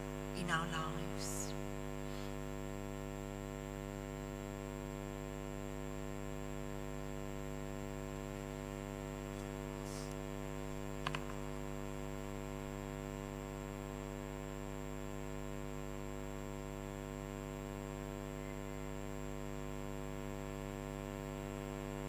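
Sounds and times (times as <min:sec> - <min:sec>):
electrical mains hum: 0:00.0 - 0:22.0.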